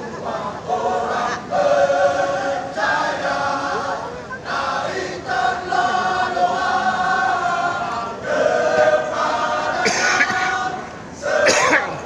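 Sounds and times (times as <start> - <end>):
male choir singing: 0.0 - 12.0.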